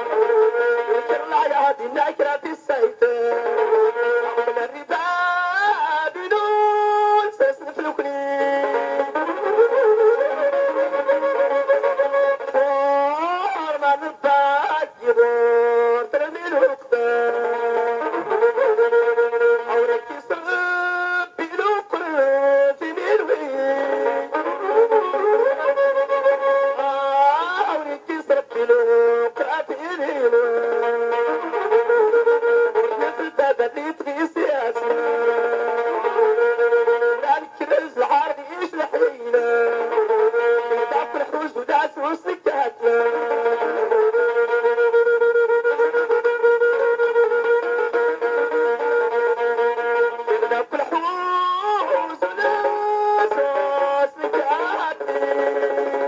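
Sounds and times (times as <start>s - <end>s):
man singing long held notes: 0.0s - 56.0s
nasal-toned melody instrument: 0.0s - 56.0s.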